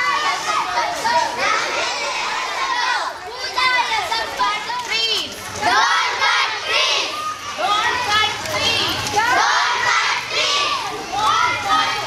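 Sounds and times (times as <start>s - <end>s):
children shouting in chorus: 0.0s - 12.0s.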